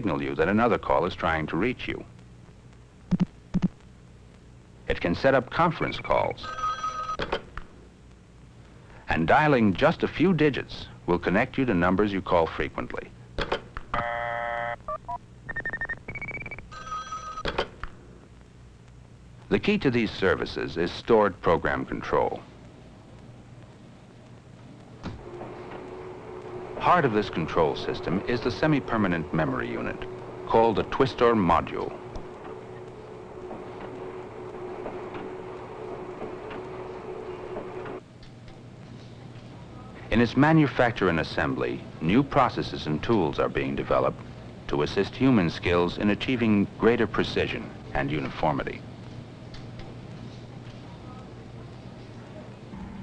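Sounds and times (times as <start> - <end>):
warbling telephone ring tones: 6.4 - 7.2, 14.0 - 17.5
touch-tone beeps: 14.9 - 17.5
steady buzzing tone: 21.1 - 38.0
assembly machine humming: 24.8 - 38.0.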